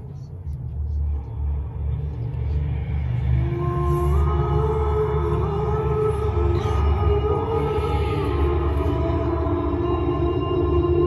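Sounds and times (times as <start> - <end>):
deep low drone: 0.0 - 11.0.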